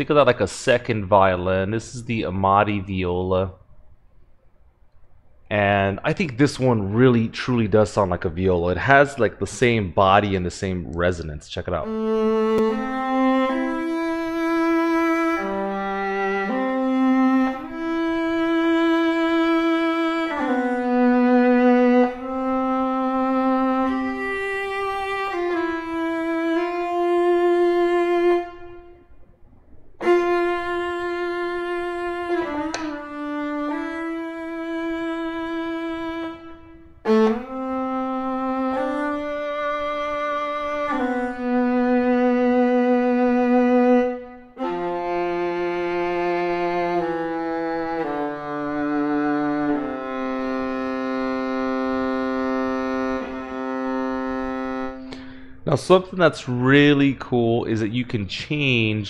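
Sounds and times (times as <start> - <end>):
bowed viola melody: 11.7 - 55.5.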